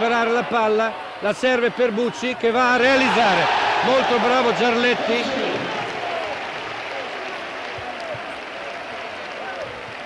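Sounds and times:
crowd applauding and cheering: 0:02.9 - 0:10.0.

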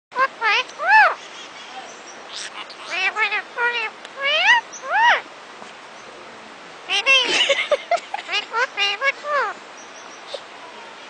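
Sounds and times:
parakeets talking: 0:00.1 - 0:05.3, 0:06.8 - 0:10.9.

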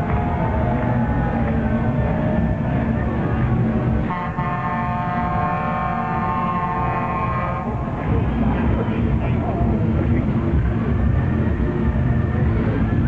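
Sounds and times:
low rumble: 0:00.0 - 0:13.0
people chattering: 0:00.0 - 0:13.0
steady horn-like tone: 0:04.0 - 0:08.5.

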